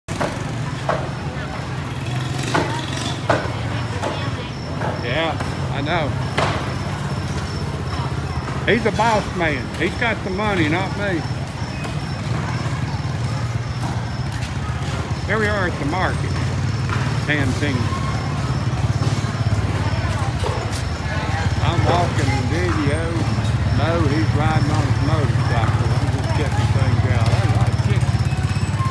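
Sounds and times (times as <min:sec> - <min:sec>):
people's voices: 0:00.1 - 0:28.9.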